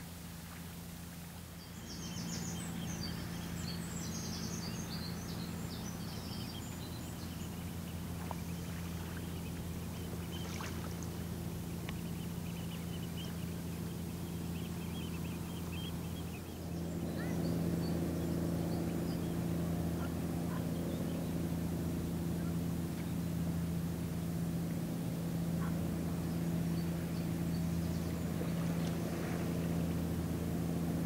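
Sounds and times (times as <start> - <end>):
ship engine drone: 0.0 - 31.0.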